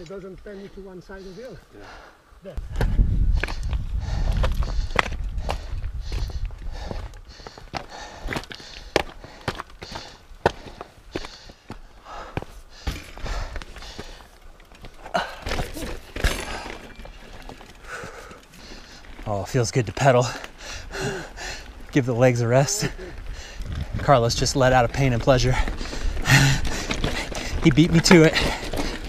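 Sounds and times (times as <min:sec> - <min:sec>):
mountain bike clattering: 0:02.7 - 0:29.0
footsteps on loose rock: 0:02.8 - 0:19.3, 0:24.9 - 0:29.0.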